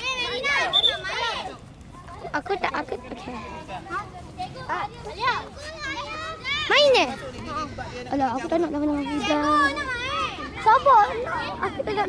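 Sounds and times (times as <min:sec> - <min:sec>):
children calling and shouting: 0:00.0 - 0:12.0.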